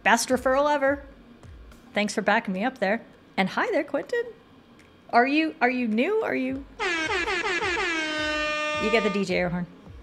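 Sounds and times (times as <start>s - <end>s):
air horn blast: 6.8s - 9.3s.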